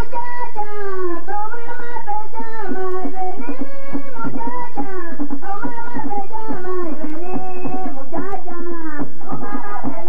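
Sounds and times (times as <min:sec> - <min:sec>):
drum strokes: 0:00.0 - 0:10.0.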